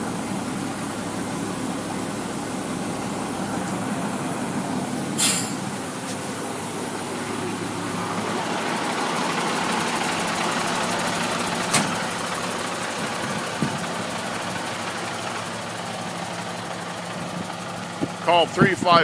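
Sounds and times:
diesel engine idling: 0:00.0 - 0:19.0.

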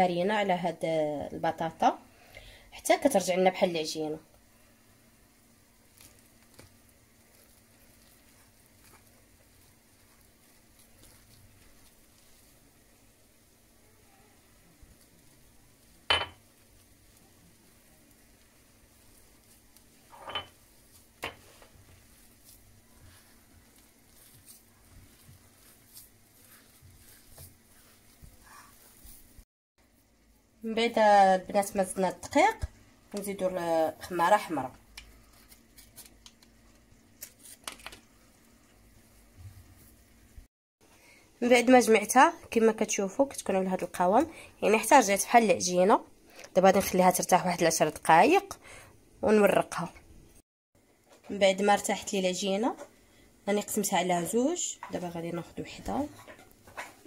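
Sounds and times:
hands mixing dough in bowl: 0:05.7 - 0:40.4, 0:53.6 - 0:57.0.

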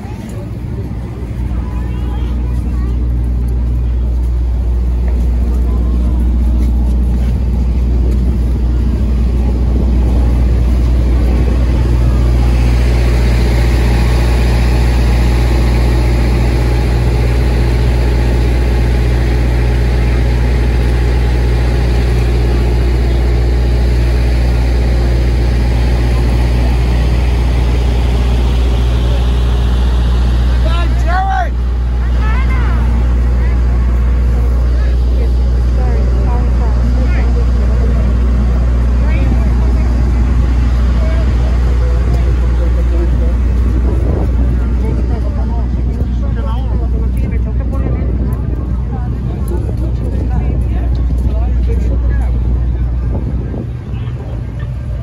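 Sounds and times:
crowd chatter: 0:00.0 - 0:55.0
vehicle engine idling: 0:00.0 - 0:55.0.

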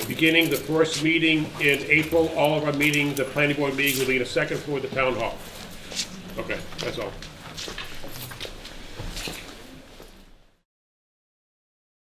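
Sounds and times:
faint room noise: 0:00.0 - 0:10.6.

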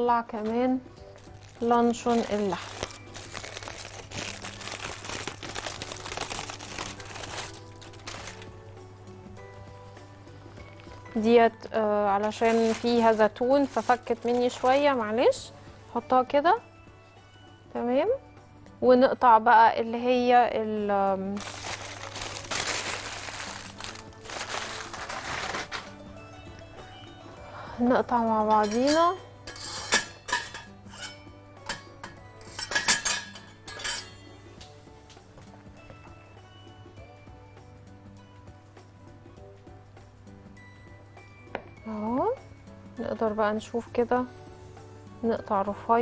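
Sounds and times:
soft background music: 0:00.0 - 0:46.0
aluminium foil crinkling: 0:01.2 - 0:08.5, 0:12.2 - 0:15.0, 0:21.3 - 0:26.0.

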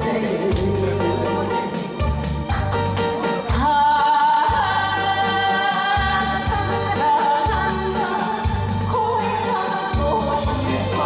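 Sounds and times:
steady bass beat: 0:00.0 - 0:05.0
woman singing into a microphone: 0:03.4 - 0:11.0.

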